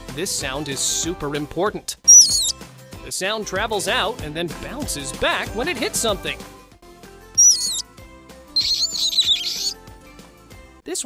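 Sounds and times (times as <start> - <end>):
soft background music: 0.0 - 11.0
bat squeaks: 2.1 - 2.6, 7.4 - 7.9, 8.6 - 9.8.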